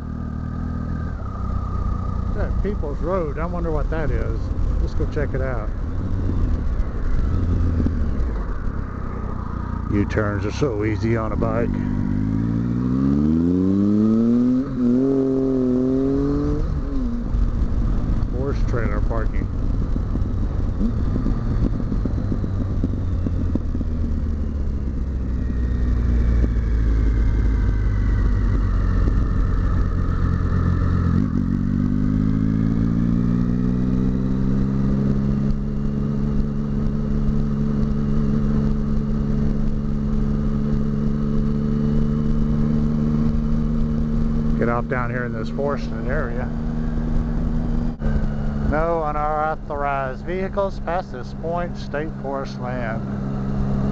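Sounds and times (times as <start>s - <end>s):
motorcycle engine accelerating: 0.0s - 53.9s
wind noise: 0.9s - 53.9s.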